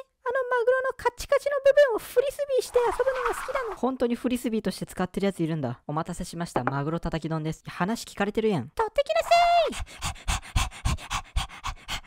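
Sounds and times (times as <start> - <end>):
dog panting fast: 9.2 - 12.0.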